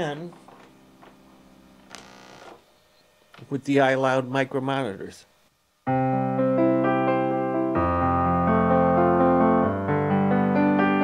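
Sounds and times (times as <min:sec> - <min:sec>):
faint steady hum: 0:00.0 - 0:06.2.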